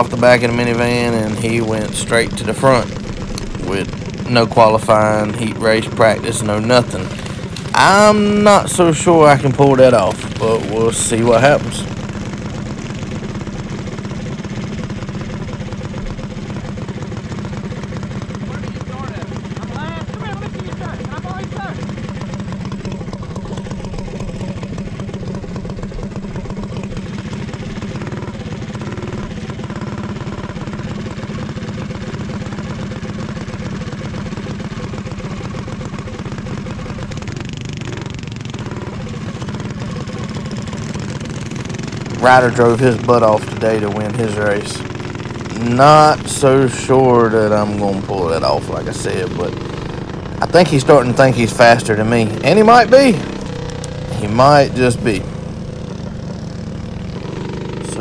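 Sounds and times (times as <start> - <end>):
kart engine running steadily: 0.0 - 58.0
other kart engines: 0.0 - 58.0.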